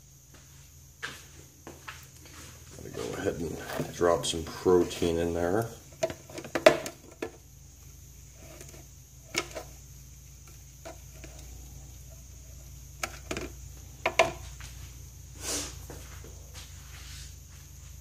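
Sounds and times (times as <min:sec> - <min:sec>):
footsteps: 0:00.3 - 0:05.2, 0:15.6 - 0:18.0
knocks and clicks of handling: 0:13.0 - 0:14.4.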